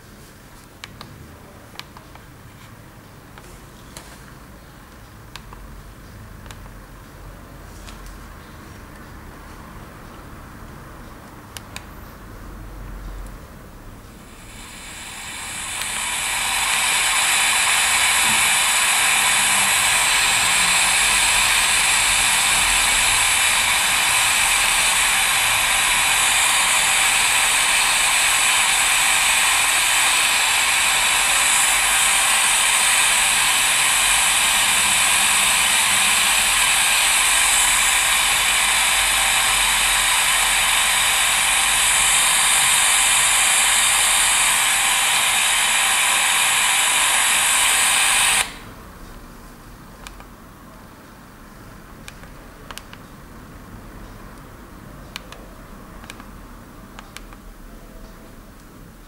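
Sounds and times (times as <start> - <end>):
radio static hiss: 14.1 - 48.8.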